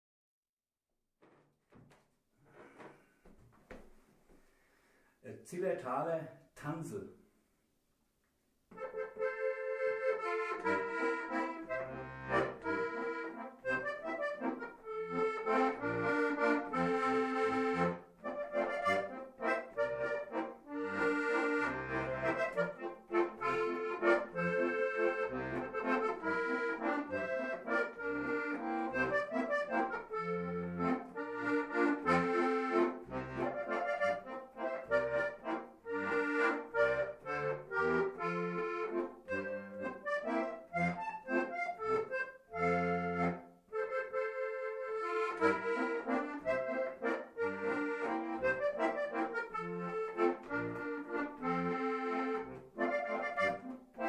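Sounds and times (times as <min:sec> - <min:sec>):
button accordion folk dance tune: 0:08.7 - 0:54.0.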